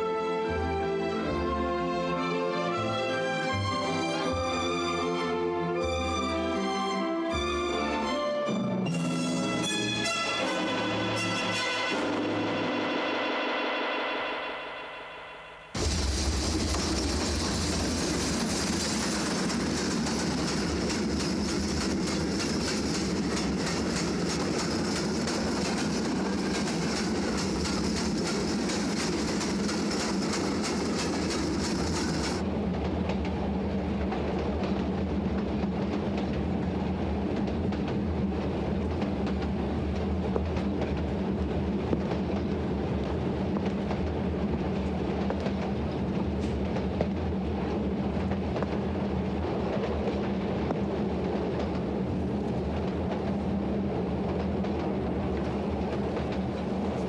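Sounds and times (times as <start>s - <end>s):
passenger train running: 0.0s - 57.0s
train wheels clattering: 15.8s - 47.4s.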